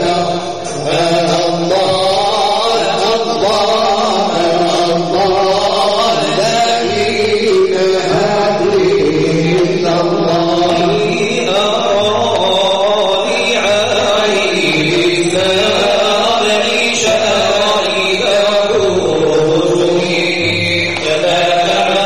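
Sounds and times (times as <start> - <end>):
voice chanting gliding melody: 0.0 - 22.0.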